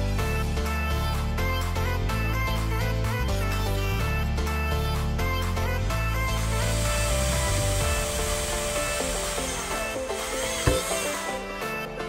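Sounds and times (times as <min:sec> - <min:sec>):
cordless drill boring through plastic: 0:06.2 - 0:11.6.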